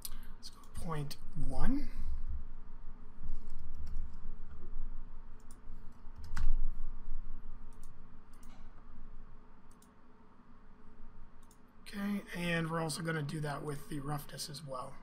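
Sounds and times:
keyboard typing: 0:03.4 - 0:04.2, 0:05.4 - 0:06.6
mouse clicks: 0:09.7 - 0:10.0.

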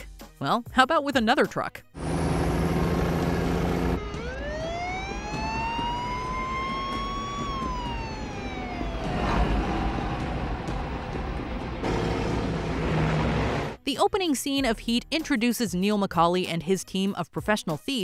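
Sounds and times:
diesel truck engine rumbling: 0:02.0 - 0:13.8
siren wailing: 0:02.0 - 0:13.8
traffic noise: 0:09.0 - 0:13.8.

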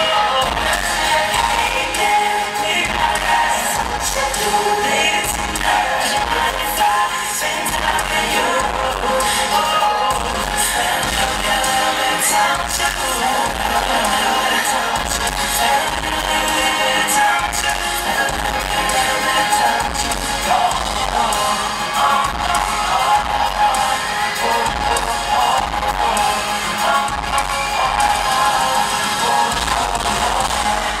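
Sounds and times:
drums: 0:00.0 - 0:31.0
live pop band music: 0:00.0 - 0:31.0
strong bass line: 0:19.8 - 0:31.0.

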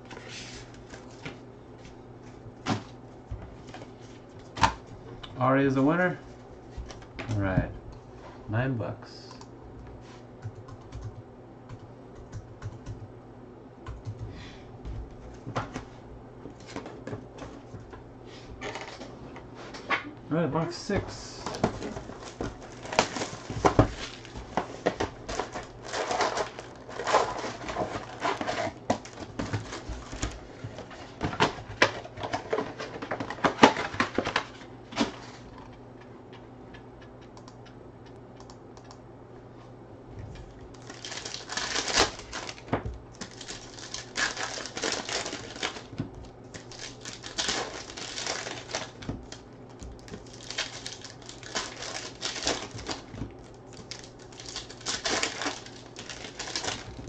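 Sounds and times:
cardboard and card packs handled: 0:20.8 - 0:35.5, 0:40.8 - 0:57.0
foil wrappers crinkling: 0:21.3 - 0:34.6, 0:40.7 - 0:57.0.

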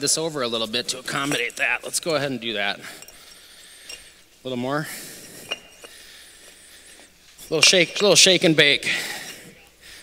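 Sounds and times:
stone clinking on stone: 0:05.4 - 0:06.0.

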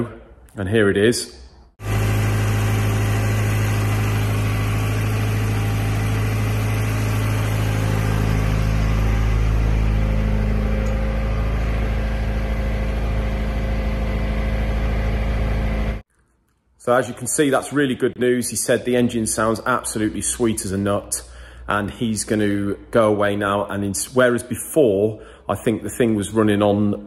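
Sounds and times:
engine running steadily: 0:01.8 - 0:16.0.

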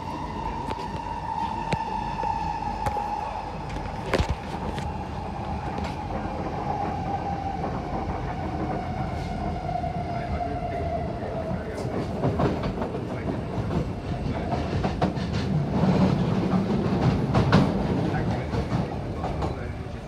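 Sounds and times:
wheels rumbling on rail: 0:00.0 - 0:20.0
track clacks: 0:11.4 - 0:19.8.

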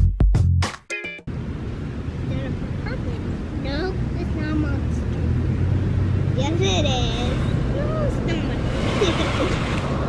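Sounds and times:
young children's voices: 0:06.3 - 0:09.6.

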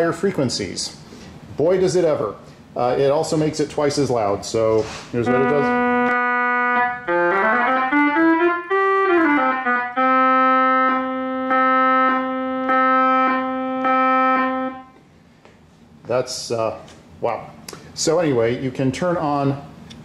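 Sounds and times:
electronic keyboard playing notes: 0:05.2 - 0:15.0.

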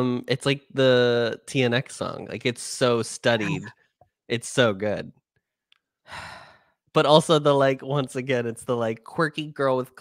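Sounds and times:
person talking: 0:00.0 - 0:03.7, 0:04.3 - 0:05.1
person breathing: 0:06.1 - 0:06.8.

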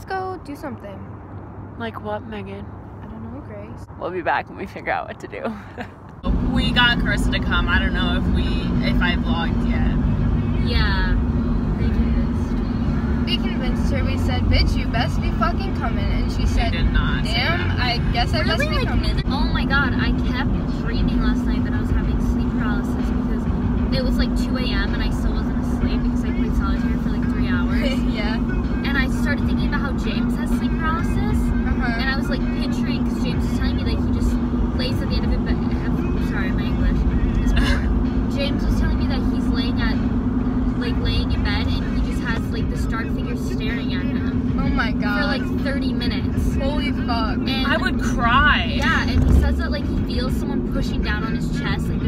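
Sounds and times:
car road and engine rumble: 0:00.0 - 0:52.0
voices talking: 0:00.0 - 0:52.0.

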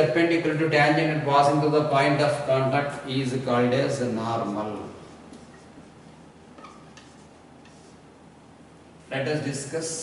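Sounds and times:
low room hum: 0:00.0 - 0:10.0
marker writing on whiteboard: 0:04.2 - 0:08.2.

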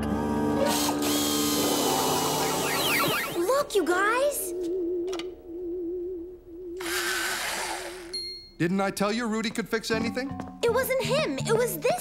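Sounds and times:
electric pencil sharpener whirring: 0:00.0 - 0:03.2, 0:06.8 - 0:08.2.

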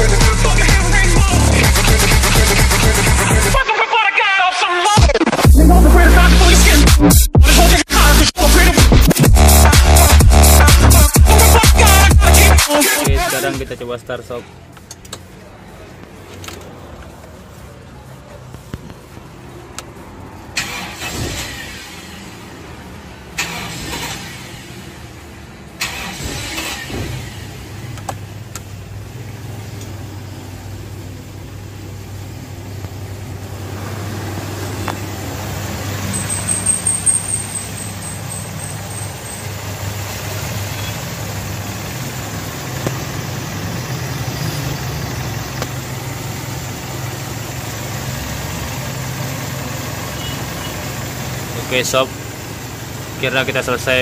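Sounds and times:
car engine cranking: 0:00.0 - 0:03.6, 0:04.9 - 0:17.7, 0:18.4 - 0:54.0
car engine idling: 0:07.5 - 0:54.0.

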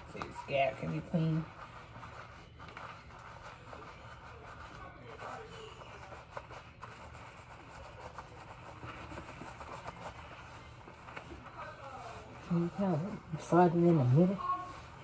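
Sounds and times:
fingers rubbing lathered hair: 0:00.0 - 0:15.0.

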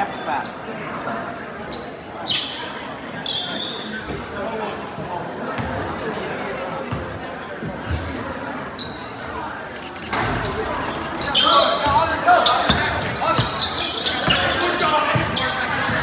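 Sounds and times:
crowd chatter in large hall: 0:00.0 - 0:16.0.

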